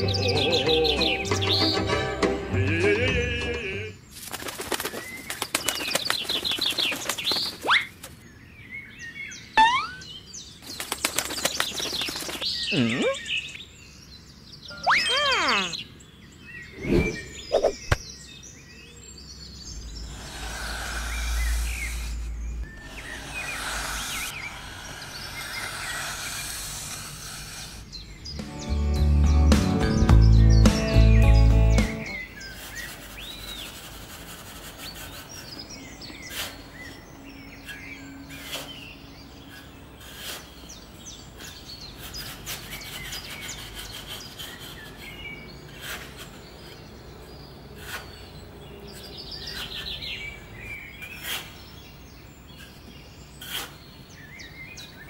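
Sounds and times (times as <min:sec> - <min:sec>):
boing-like wobble: 0:09.6 - 0:10.0
cartoon whooshes: 0:09.6 - 0:10.0, 0:14.8 - 0:15.8, 0:16.8 - 0:18.0.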